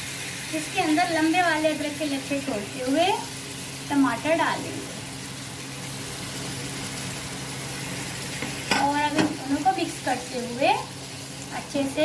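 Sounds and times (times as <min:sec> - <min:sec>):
tomatoes sizzling in hot oil: 0:00.0 - 0:12.0.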